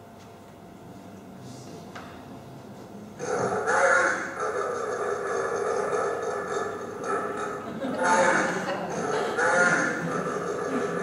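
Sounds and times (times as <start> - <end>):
recorded animal sound: 3.2 - 11.0.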